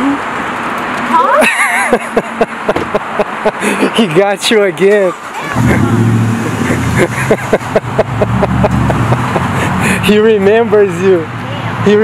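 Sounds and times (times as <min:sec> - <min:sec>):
voices and laughter: 0:01.2 - 0:04.3, 0:05.2 - 0:10.3
truck engine running: 0:05.2 - 0:10.4.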